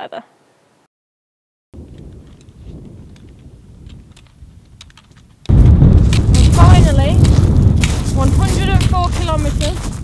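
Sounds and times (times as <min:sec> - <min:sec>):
wind rumbling on microphone: 0:01.8 - 0:10.0.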